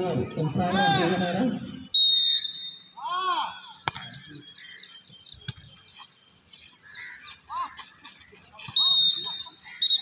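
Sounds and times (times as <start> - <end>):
referee's whistle: 1.5 - 5.8, 8.7 - 10.0
player shouting: 3.0 - 3.8.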